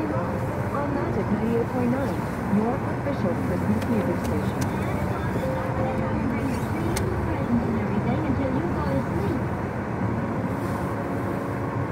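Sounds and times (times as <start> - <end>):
voice from car radio: 0.0 - 9.5
car engine and tyres rumbling: 0.0 - 11.9.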